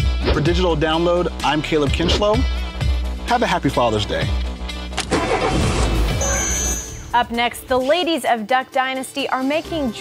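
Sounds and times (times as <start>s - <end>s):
background music: 0.0s - 10.0s
car engine starting and revving: 4.9s - 6.4s.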